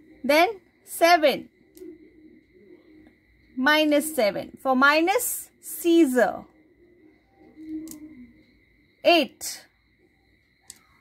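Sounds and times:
faint low hum: 0.0 - 11.0
abacus beads clicking: 7.7 - 8.2, 10.6 - 11.0.

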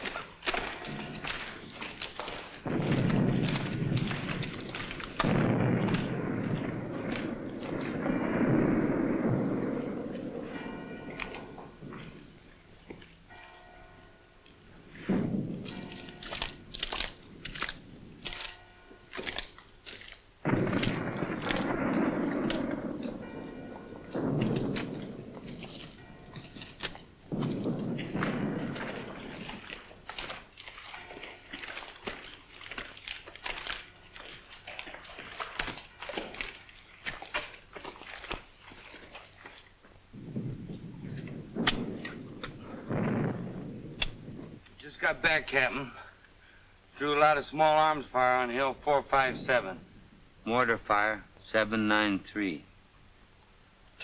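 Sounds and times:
small-arms gunfire cracks: 0.0 - 12.1, 20.4 - 32.3, 40.6 - 44.7
heavy shellfire blasts: 0.0 - 12.7, 14.9 - 18.6, 20.4 - 32.3, 40.2 - 46.0.

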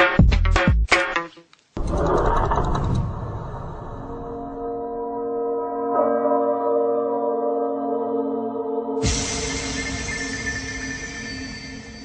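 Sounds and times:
low rumbling: 1.8 - 5.0.

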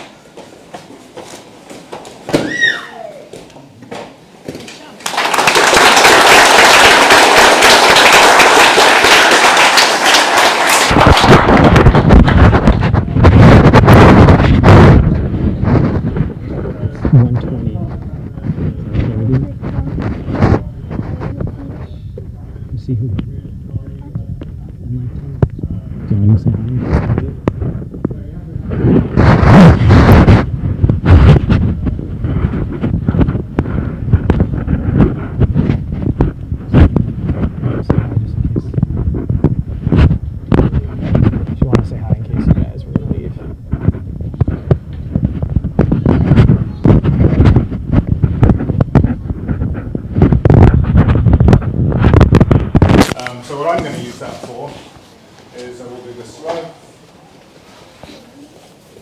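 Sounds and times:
bumps and rustling: 10.9 - 22.4, 24.0 - 55.5.

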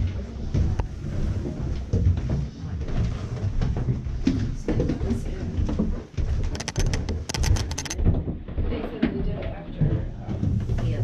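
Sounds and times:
rattle of sharp high clicks: 6.5 - 8.0.

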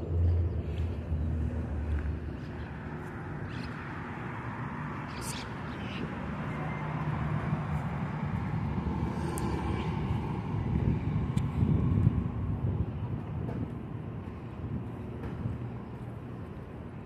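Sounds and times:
passing cars rumble: 0.0 - 17.0.

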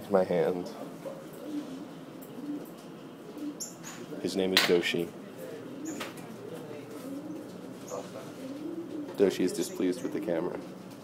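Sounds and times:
duck cooing calls: 7.0 - 10.4.

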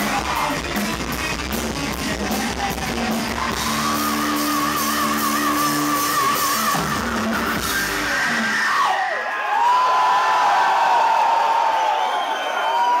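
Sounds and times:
live heavy metal band: 0.0 - 9.1
audience yelling: 2.3 - 13.0.

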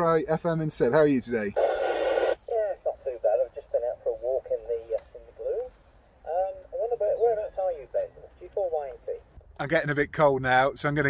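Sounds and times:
man's voice over radio speaker: 0.0 - 5.7, 6.7 - 11.0
radio squelch hiss burst: 1.5 - 5.8.

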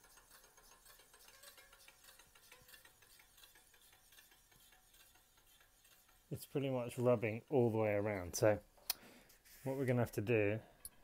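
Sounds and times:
disc brake rotor rubbing pad: 0.0 - 8.6.

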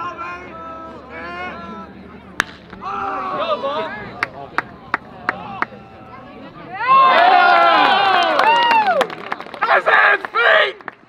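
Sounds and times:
people shouting: 0.0 - 4.1, 6.7 - 9.0
baseball bat hitting ball: 2.3 - 3.5.

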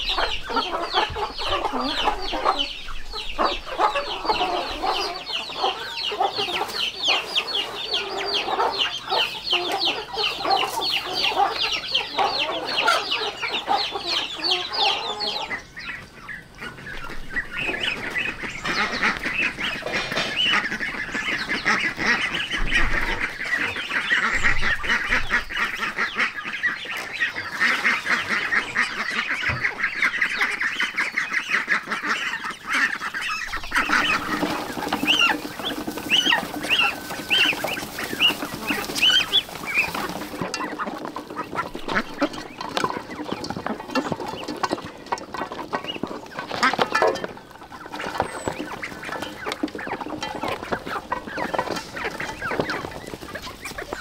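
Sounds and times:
chickens clucking: 0.0 - 54.0
flock of ducks calling: 0.0 - 54.0.

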